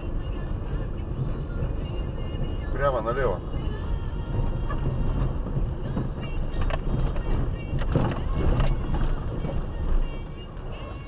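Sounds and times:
engine and tyre rumble: 0:00.0 - 0:11.0.

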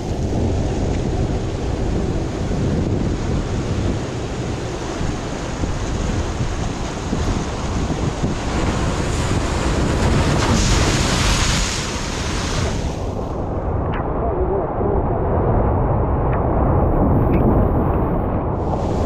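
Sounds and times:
surf breaking over rocks: 0:00.0 - 0:15.6
wind buffeting microphone: 0:00.0 - 0:19.0.

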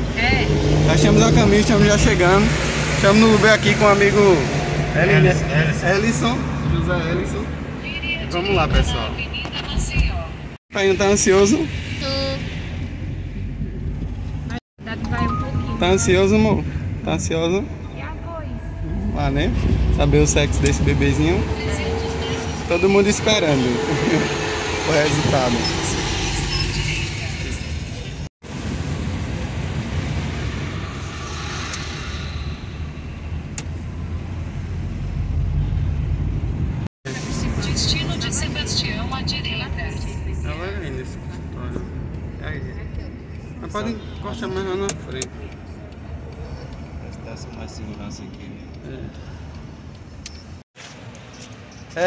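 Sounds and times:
car engine and tyres rumbling: 0:00.0 - 0:52.0
held tone: 0:14.9 - 0:16.6.

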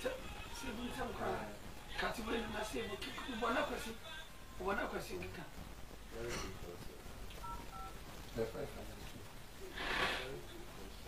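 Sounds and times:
telephone keypad tones: 0:07.4 - 0:08.0.

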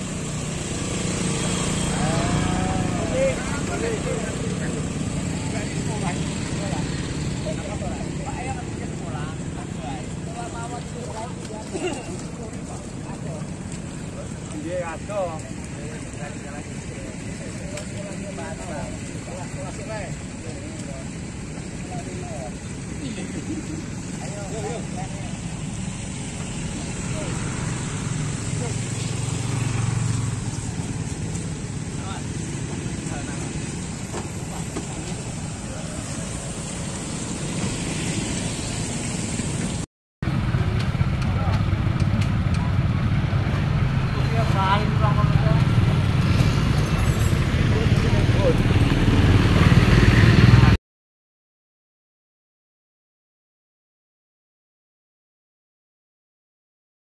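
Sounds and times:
motorcycle engines rumbling: 0:00.0 - 0:50.8
people talking: 0:01.2 - 0:25.8, 0:26.6 - 0:27.7, 0:28.4 - 0:29.2, 0:31.9 - 0:36.3, 0:41.2 - 0:41.8, 0:42.4 - 0:49.2
faint voices: 0:01.3 - 0:31.0.

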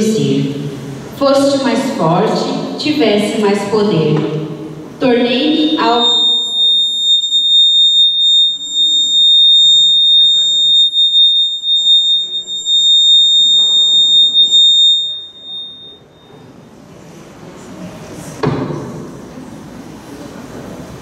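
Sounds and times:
microphone feedback squeal: 0:05.5 - 0:16.7.

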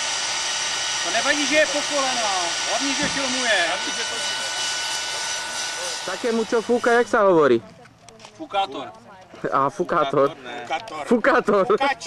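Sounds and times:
handheld blower motor whine: 0:00.0 - 0:07.4.

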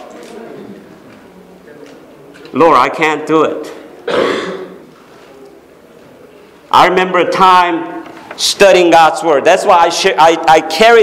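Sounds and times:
man clearing his throat: 0:04.0 - 0:04.8.

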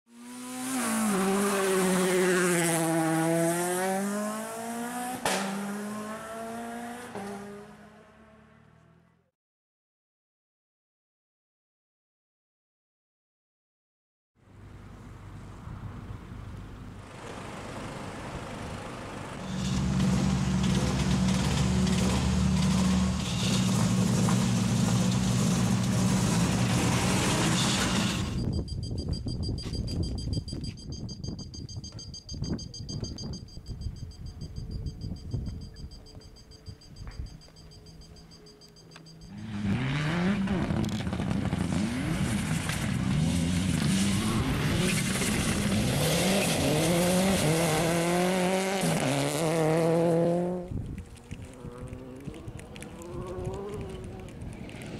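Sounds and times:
rally car engine revving: 0:00.1 - 0:08.7, 0:17.1 - 0:28.4, 0:39.3 - 0:50.7, 0:51.4 - 0:54.9
engine idling: 0:16.4 - 0:24.3.

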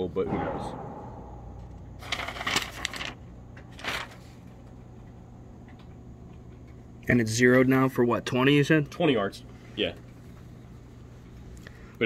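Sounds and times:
steady low hum: 0:00.0 - 0:12.0
paper rustling: 0:02.0 - 0:04.6.

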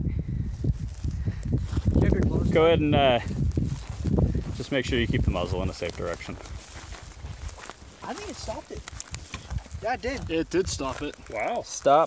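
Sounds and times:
low rumbling on microphone: 0:00.0 - 0:08.0
faint rustling: 0:00.9 - 0:12.0.

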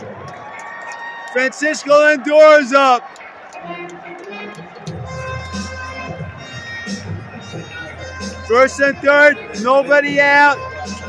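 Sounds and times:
crowd noise: 0:00.0 - 0:11.0
music over loudspeakers: 0:03.6 - 0:11.0.

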